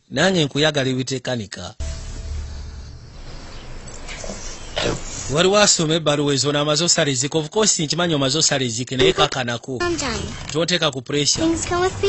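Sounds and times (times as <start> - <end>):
low film soundtrack music: 1.8 - 4.8.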